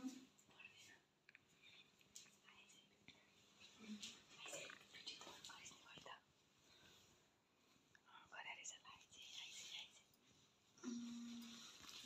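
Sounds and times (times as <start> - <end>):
faint whispering: 0.0 - 7.1, 7.9 - 12.0.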